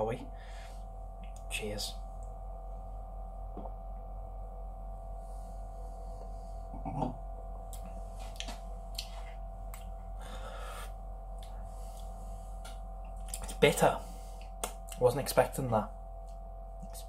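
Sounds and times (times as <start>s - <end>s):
steady electrical hum: 0.0s - 17.0s
breathy exhale: 0.3s - 0.8s, 10.2s - 11.0s
closed-mouth mm-hmm: 6.7s - 7.2s
person drinking and swallowing: 6.7s - 7.2s.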